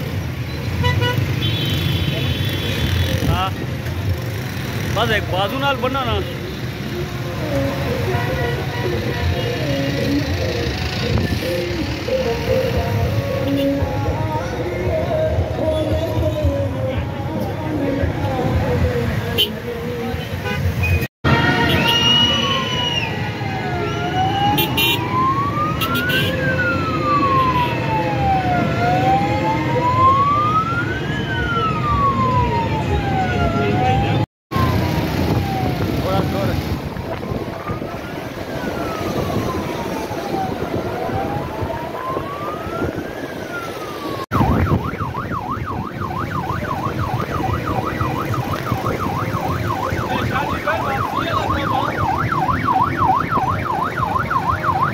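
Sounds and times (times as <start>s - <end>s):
road traffic noise: 0.0s - 54.9s
vehicle siren wailing: 2.6s - 16.3s, 21.3s - 54.9s.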